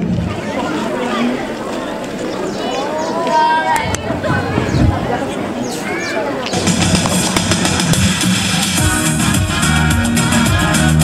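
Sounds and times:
drums: 0.0 - 0.6, 6.4 - 11.0
bass line: 6.5 - 11.0
instrumental backing track: 6.5 - 11.0.

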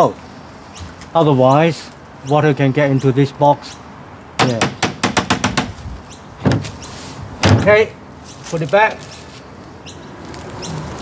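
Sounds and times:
outdoor background: 0.0 - 11.0
small bird chirping: 0.6 - 3.9, 6.0 - 7.1, 8.2 - 11.0.

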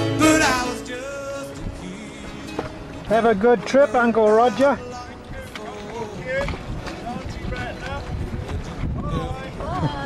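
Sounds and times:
wind rumbling on microphone: 4.8 - 10.0.

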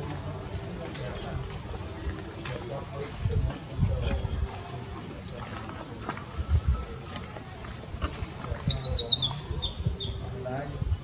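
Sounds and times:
baby monkey squeaking: 8.6 - 10.2.

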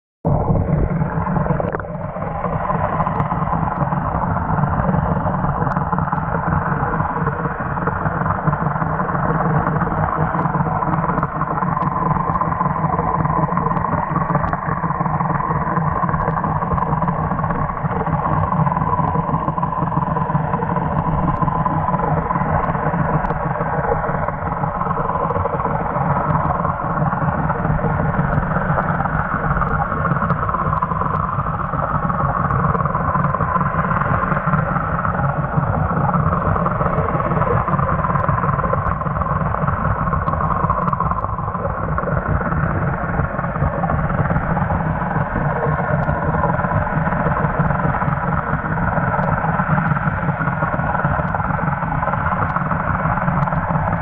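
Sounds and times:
underwater boat engine drone: 0.2 - 54.0.

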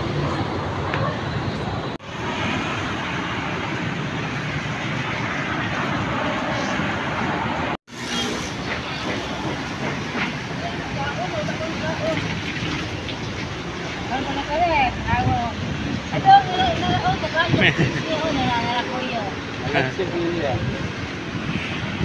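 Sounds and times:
passing traffic: 0.0 - 22.0
rain hissing on wet street: 10.3 - 18.4.

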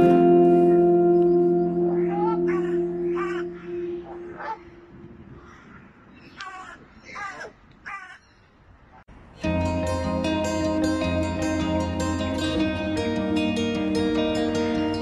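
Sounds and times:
background music chord: 0.0 - 5.0, 9.4 - 15.0
crows cawing: 1.8 - 8.3.

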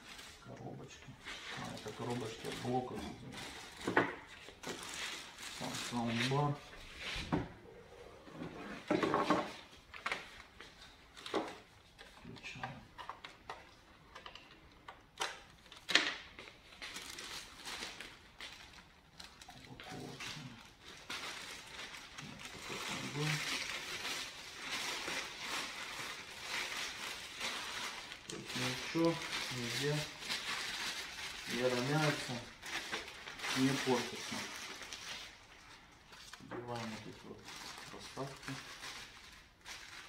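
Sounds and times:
packaging rustling: 0.0 - 6.8, 9.5 - 40.0.

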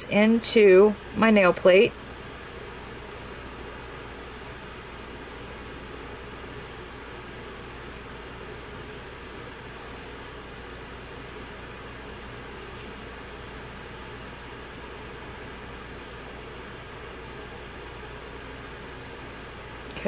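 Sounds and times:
faint low hum: 0.0 - 20.0.

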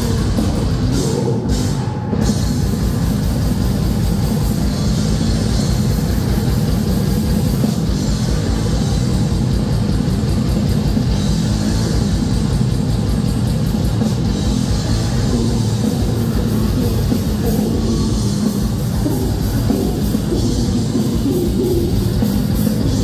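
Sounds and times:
death metal band playing live: 0.0 - 23.0
distorted guitars and bass: 0.0 - 23.0.

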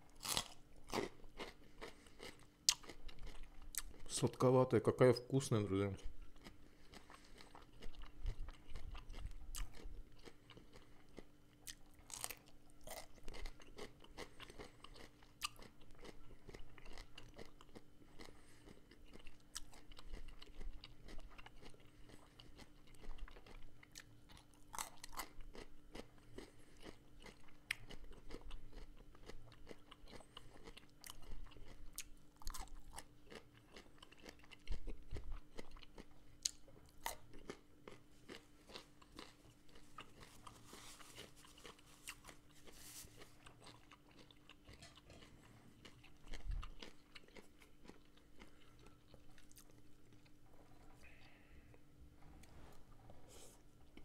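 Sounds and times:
chewing crunchy vegetables: 0.0 - 54.0.

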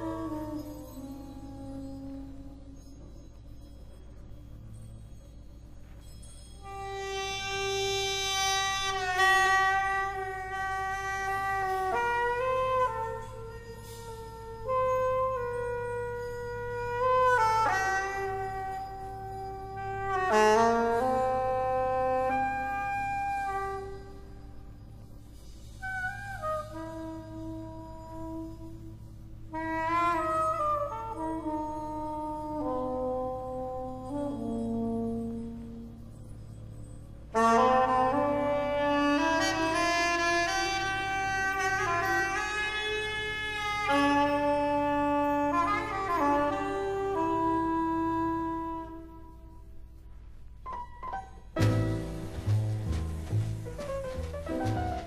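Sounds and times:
soprano saxophone playing: 0.0 - 3.0, 6.6 - 25.0, 25.8 - 50.0.

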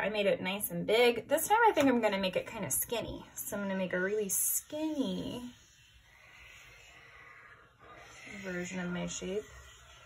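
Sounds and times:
marker scratching on paper: 4.0 - 10.0.

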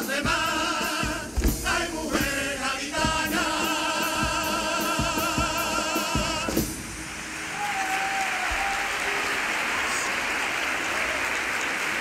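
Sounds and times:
male choir singing in harmony: 0.0 - 6.8
drum beats: 0.0 - 9.2.

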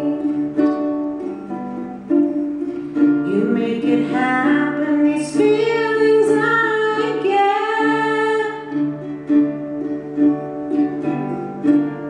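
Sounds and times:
ukulele: 0.0 - 12.0
woman singing: 3.2 - 9.0.

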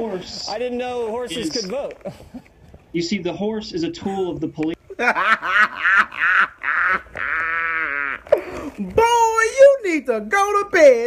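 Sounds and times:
man laughing hard: 4.8 - 8.4.

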